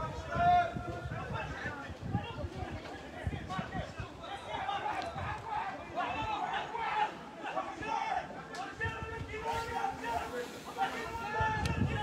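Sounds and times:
overlapping voices chatting: 0:00.0 - 0:12.0.

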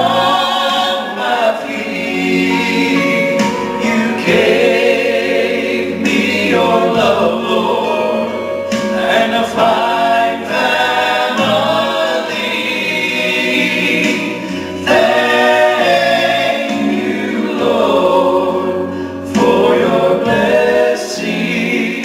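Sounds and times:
men singing in harmony: 0:00.0 - 0:22.0
steady bass accompaniment: 0:00.0 - 0:22.0.

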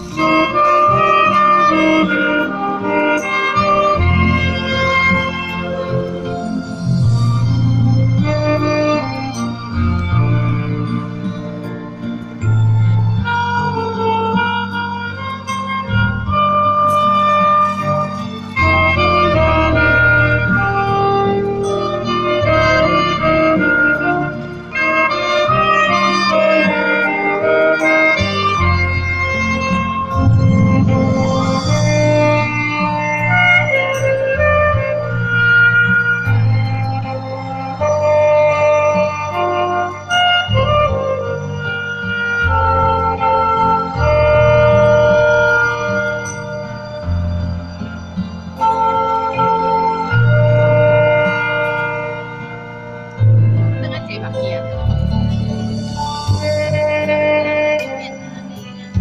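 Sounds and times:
backing track bass and keyboard: 0:00.0 - 0:59.0
saxophone duet: 0:00.0 - 0:59.0.

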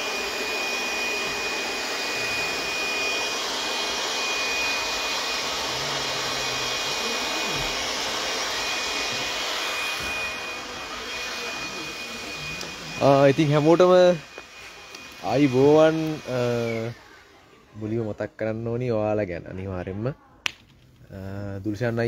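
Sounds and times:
high whine: 0:00.0 - 0:17.0
blower rushing: 0:00.0 - 0:18.2.

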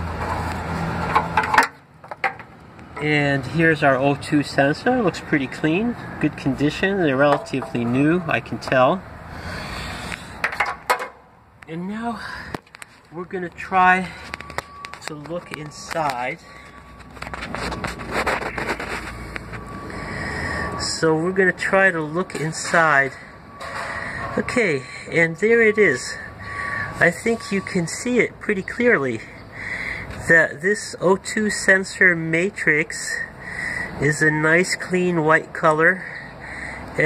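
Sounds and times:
metallic clicks and scrapes: 0:14.2 - 0:19.7.

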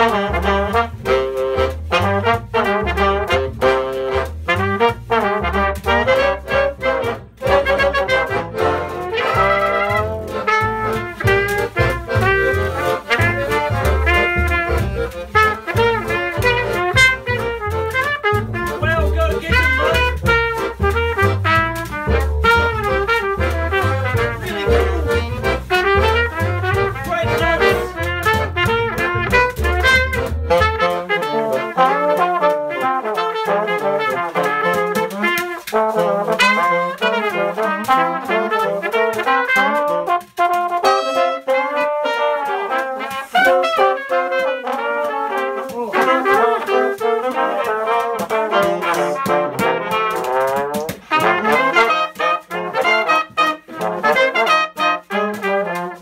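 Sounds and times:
double bass line: 0:00.0 - 0:56.0
small acoustic jazz band: 0:00.0 - 0:56.0.

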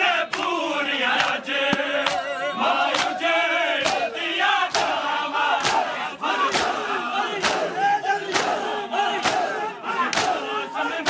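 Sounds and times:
men chanting together: 0:00.0 - 0:11.0
hands slapping chests: 0:00.3 - 0:00.5, 0:01.2 - 0:02.2, 0:02.9 - 0:03.2, 0:03.8 - 0:04.1, 0:04.7 - 0:10.4.

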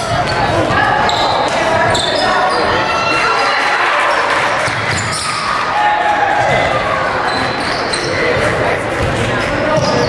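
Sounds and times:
basketball bouncing: 0:00.0 - 0:02.0
sneakers squeaking on court: 0:00.0 - 0:03.0, 0:04.1 - 0:05.5, 0:07.2 - 0:10.0.

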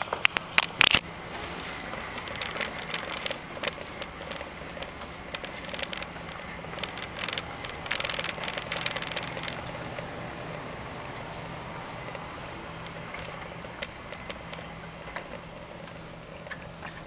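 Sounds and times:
wheelchair clicks and rattles: 0:00.0 - 0:17.0
wheelchair motor hum: 0:00.0 - 0:17.0.

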